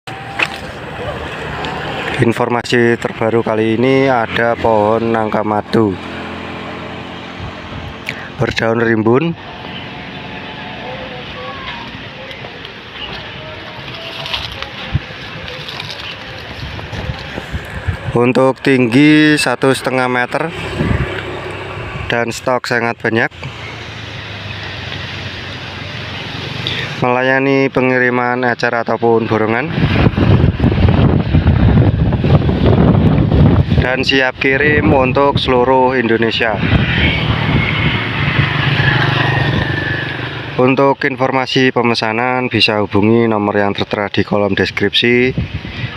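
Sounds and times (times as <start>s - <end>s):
wind buffeting microphone: 0.1s - 19.0s, 19.8s - 22.4s, 29.4s - 40.6s, 44.3s - 45.9s.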